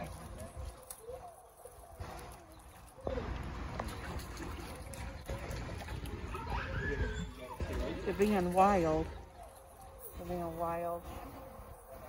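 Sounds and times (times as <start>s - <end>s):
faint voices: 0.0s - 12.0s
water splashing and sloshing: 0.0s - 12.0s.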